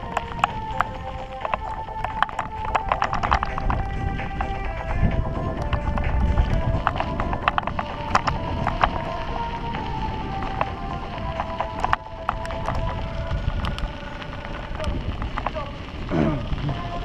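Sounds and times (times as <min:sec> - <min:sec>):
bicycle rattling: 0:00.0 - 0:17.0
tyres rumbling: 0:00.0 - 0:17.0
wind: 0:00.0 - 0:17.0.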